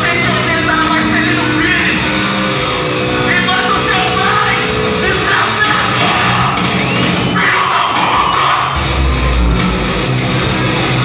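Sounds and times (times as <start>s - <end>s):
crowd yelling and cheering: 0.0s - 11.0s
distorted guitar: 0.0s - 11.0s
heavy metal band playing live: 0.0s - 11.0s
shouted vocal: 4.2s - 8.9s.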